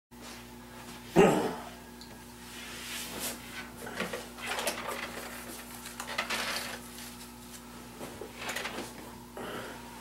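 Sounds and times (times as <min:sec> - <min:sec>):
faint electrical hum: 0:00.2 - 0:10.0.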